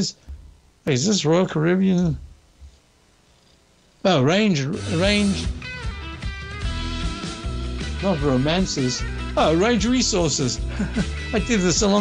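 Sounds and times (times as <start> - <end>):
faint low room hum: 0.0 - 6.6
man's voice: 4.1 - 5.6, 7.9 - 12.0.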